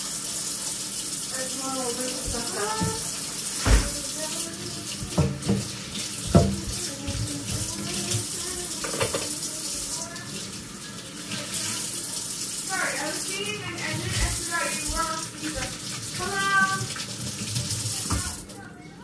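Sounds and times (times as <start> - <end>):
dishes being scrubbed: 0.0 - 18.5
kitchen tap running into sink: 0.0 - 19.0
dishware knocking and clattering: 5.1 - 7.3, 8.8 - 9.3.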